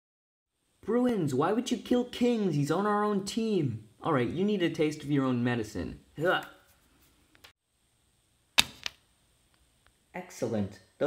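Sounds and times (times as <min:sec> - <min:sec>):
sharp arrow-hit thwack: 0:08.6 - 0:09.0.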